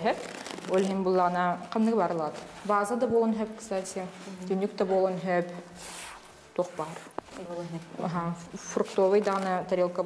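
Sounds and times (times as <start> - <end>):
woman speaking: 0.0 - 5.7, 6.6 - 10.0
paper towel rustling: 0.0 - 10.0.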